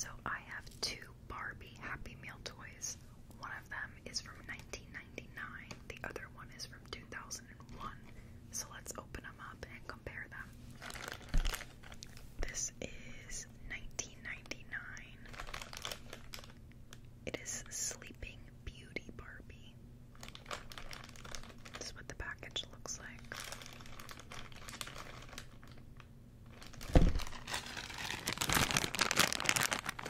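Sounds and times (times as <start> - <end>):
plastic bag crinkling: 10.7 - 12.3, 15.2 - 16.6, 20.1 - 30.0
thump: 26.9 - 27.3.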